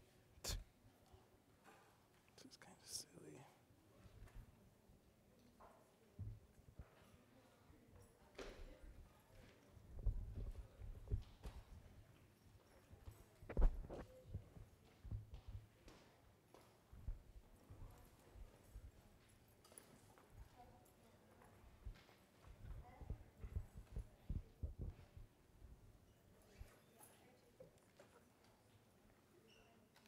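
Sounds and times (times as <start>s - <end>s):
low knocks and thumps: 22.6s - 25.2s.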